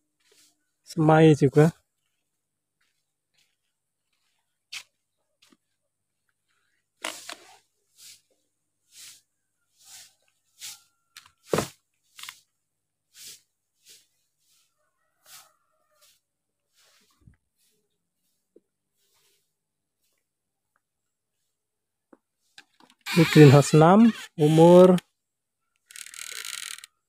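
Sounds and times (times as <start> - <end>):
footsteps on concrete: 2.0 - 6.6
scattered clicks: 25.8 - 26.9.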